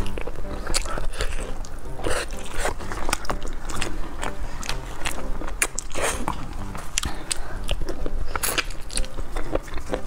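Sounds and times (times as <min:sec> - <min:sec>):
biting and chewing meat: 0:00.0 - 0:10.0.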